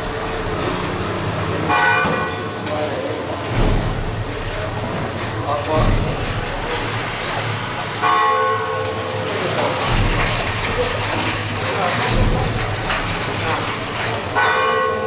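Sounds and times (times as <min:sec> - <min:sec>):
street bustle: 0:00.0 - 0:15.0
voices: 0:00.0 - 0:15.0.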